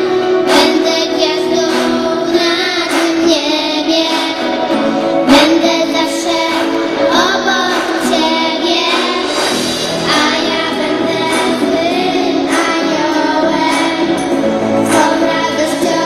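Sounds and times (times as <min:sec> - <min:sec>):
girls singing a carol: 0:05.3 - 0:16.0.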